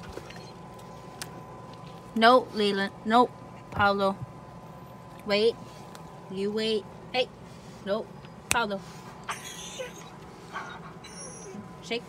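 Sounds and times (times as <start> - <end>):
dog whimpering: 9.3 - 11.8.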